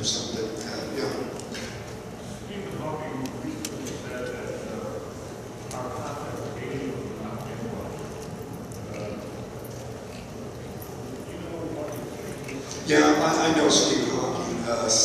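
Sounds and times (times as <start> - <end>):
distant speech in a hall: 0.0 - 15.0
hall room noise: 0.0 - 15.0.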